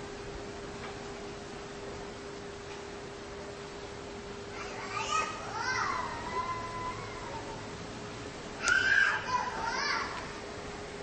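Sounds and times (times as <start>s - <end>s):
children calling out: 4.5s - 7.8s, 8.6s - 10.5s.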